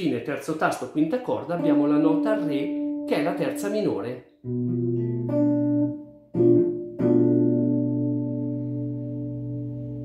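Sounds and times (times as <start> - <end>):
guitar chord strums: 1.5 - 10.0.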